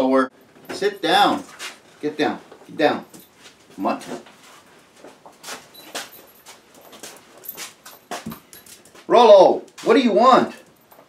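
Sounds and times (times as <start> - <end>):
dog scratchy rustles and clicks: 1.4 - 2.0, 3.3 - 9.1.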